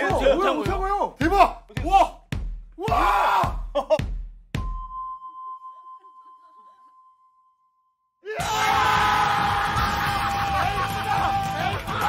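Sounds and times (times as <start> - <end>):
music: 0.0 - 5.1, 8.4 - 12.0
men screaming and cheering: 2.8 - 4.0, 8.2 - 12.0.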